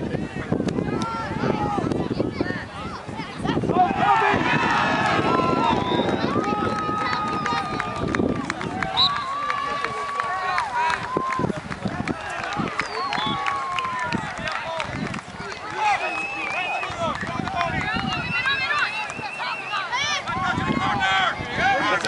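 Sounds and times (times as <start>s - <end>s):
people shouting: 3.7s - 8.0s.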